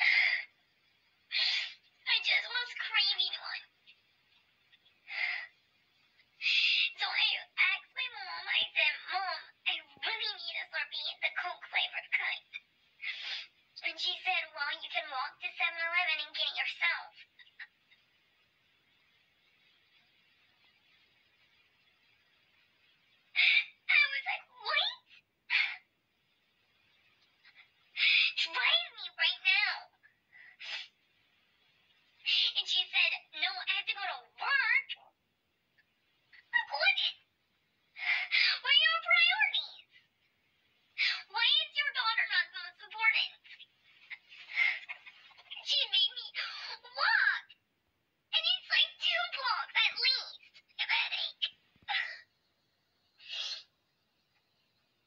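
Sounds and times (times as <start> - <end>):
faint hiss: 0.0 - 55.0
high whining voice complaining: 41.0 - 47.6.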